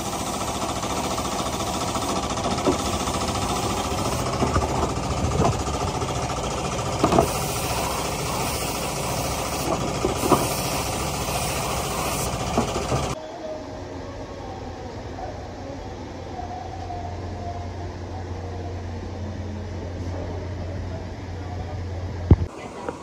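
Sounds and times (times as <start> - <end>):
spray gun hissing: 0.0 - 4.4, 7.1 - 13.2
steady mechanical drone: 0.0 - 23.0.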